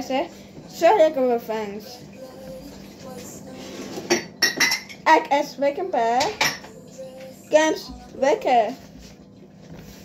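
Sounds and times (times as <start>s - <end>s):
sharp clink of dishes: 4.1s - 5.0s.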